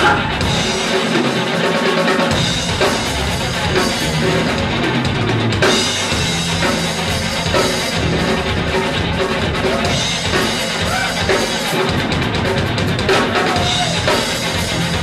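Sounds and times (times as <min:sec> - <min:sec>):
live rock band playing: 0:00.0 - 0:15.0
bass drum and snare: 0:02.1 - 0:15.0.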